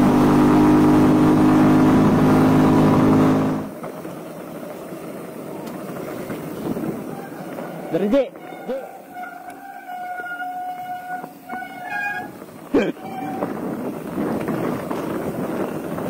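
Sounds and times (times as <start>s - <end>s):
small motorcycle engine: 0.0s - 3.7s
bike tyres rolling on dirt: 0.0s - 16.0s.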